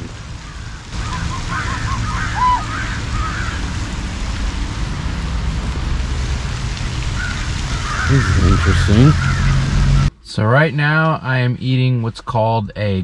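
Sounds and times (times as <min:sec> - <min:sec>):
steady rushing noise: 0:00.0 - 0:10.2
geese and ducks calling: 0:00.4 - 0:03.8, 0:07.2 - 0:10.1.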